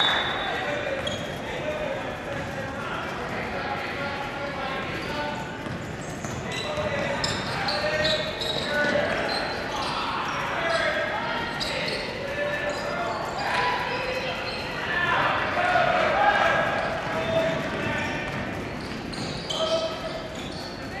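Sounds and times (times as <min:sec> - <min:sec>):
murmur of voices: 0:00.0 - 0:21.0.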